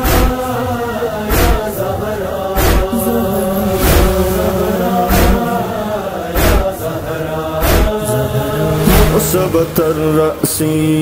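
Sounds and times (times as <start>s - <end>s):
voices chanting a drone: 0.0s - 11.0s.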